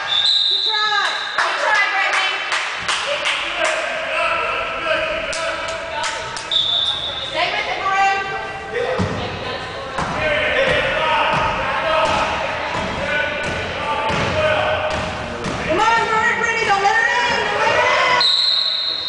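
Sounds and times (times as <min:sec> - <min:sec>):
spectators talking and calling out: 0:00.0 - 0:19.0.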